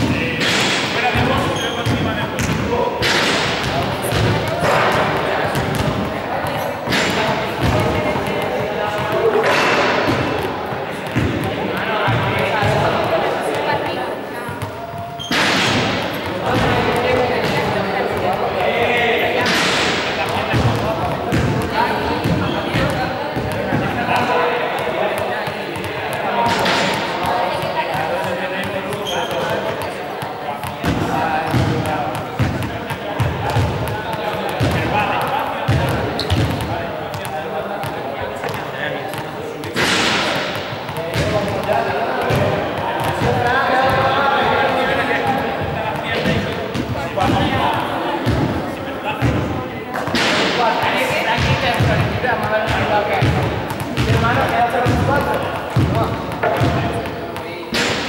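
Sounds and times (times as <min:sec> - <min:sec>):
voices chattering: 0:00.0 - 0:58.0.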